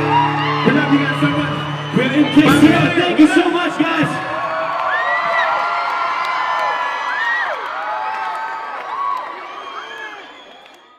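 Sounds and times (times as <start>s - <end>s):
concert crowd cheering and screaming: 0.0s - 10.9s.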